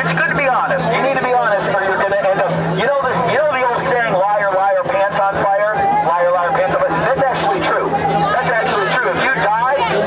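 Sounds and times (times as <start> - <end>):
crowd chatter: 0.0 - 10.0
man speaking through loudspeaker: 0.0 - 10.0.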